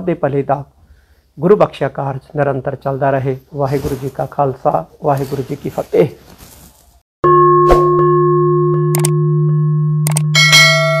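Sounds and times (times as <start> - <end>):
bright notification bell chime: 7.3 - 11.0.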